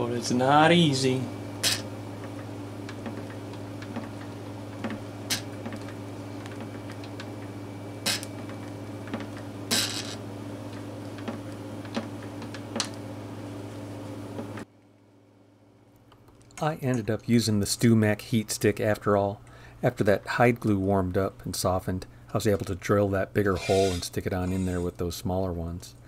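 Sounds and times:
electrical hum: 0:00.0 - 0:26.0.

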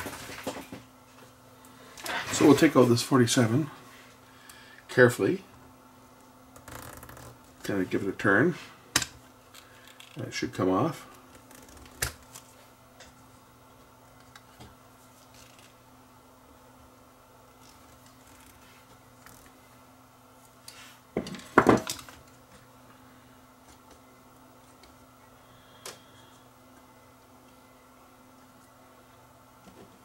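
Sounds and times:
low steady hum: 0:00.0 - 0:30.0.

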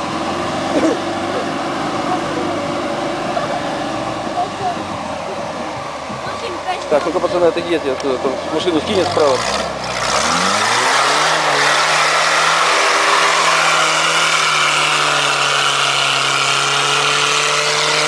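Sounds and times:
jeep engine revving hard: 0:00.0 - 0:18.0
tyres churning sand: 0:00.0 - 0:18.0.

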